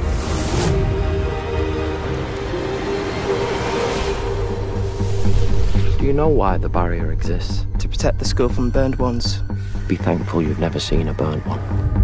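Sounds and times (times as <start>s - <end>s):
rushing noise swell: 0.0s - 7.7s
sustained drone: 0.0s - 10.2s.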